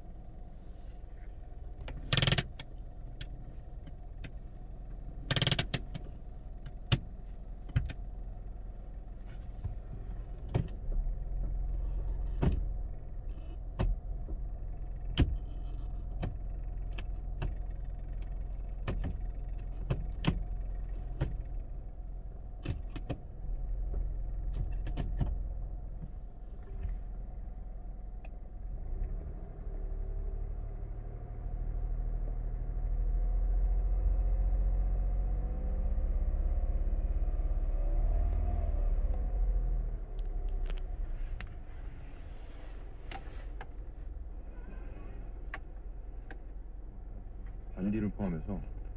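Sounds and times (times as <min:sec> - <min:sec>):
car engine idling and revving: 0:00.0 - 0:48.9.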